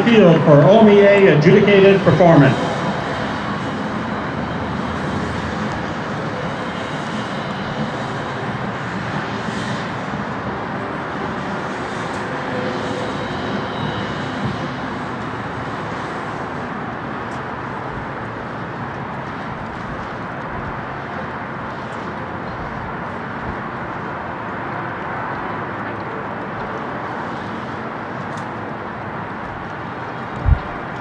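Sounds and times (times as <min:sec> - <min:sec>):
stadium ambient rumble and hiss: 0:00.0 - 0:31.0.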